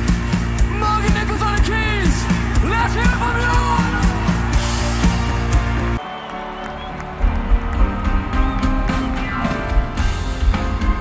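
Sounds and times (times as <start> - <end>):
bass guitar: 0.0 - 6.0
drums: 0.0 - 11.0.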